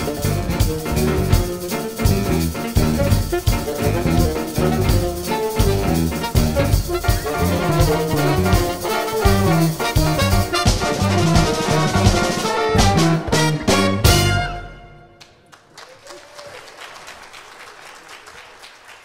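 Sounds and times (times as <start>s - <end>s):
drums: 0.0s - 14.8s
bass: 0.0s - 14.9s
band ensemble hits: 0.0s - 15.1s
brass section: 0.0s - 15.4s
piano: 0.0s - 15.4s.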